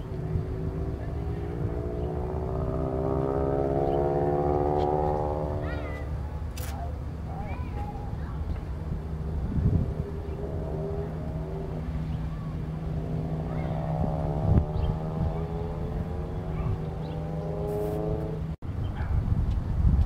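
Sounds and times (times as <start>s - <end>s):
engine running with rising whine: 0.0s - 18.6s.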